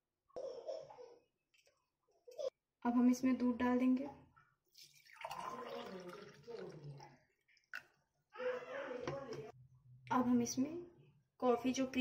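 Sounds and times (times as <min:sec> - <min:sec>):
milk pouring into a glass: 0:04.7 - 0:08.0.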